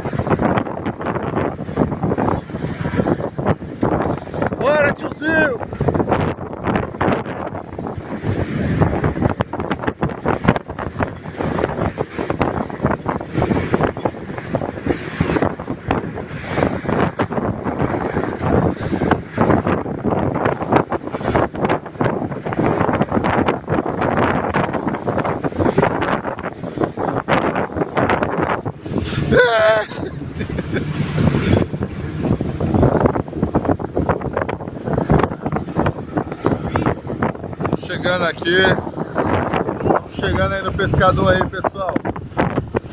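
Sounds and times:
truck running and road noise: 0.0s - 42.9s
wind buffeting microphone: 0.0s - 42.9s.

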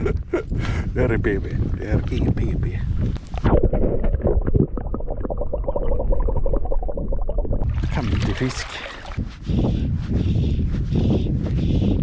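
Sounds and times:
muffled underwater gurgling: 3.4s - 9.2s
water splashing: 3.4s - 9.2s.

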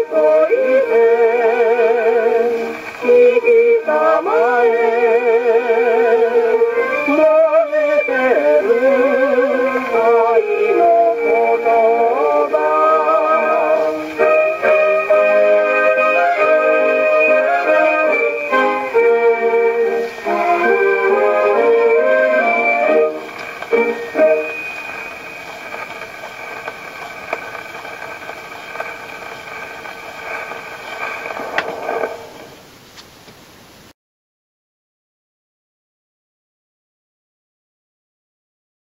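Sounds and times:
vocal song with orchestra: 0.0s - 25.0s
record surface hiss: 0.0s - 34.0s.

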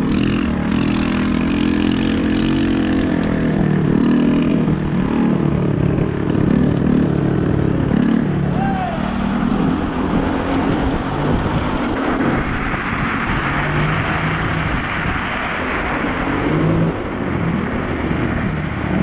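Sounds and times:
small moped engine running: 0.0s - 8.5s
wind buffeting microphone: 9.2s - 19.0s.

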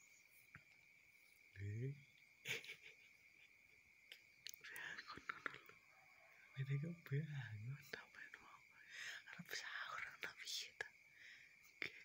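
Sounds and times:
soft whispering: 4.5s - 11.0s, 11.6s - 12.0s
faint high-pitched tone: 5.4s - 8.6s.

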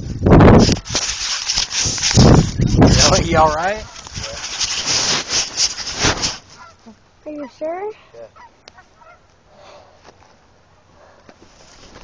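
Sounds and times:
rustling against phone microphone: 0.0s - 6.8s, 11.4s - 12.0s.

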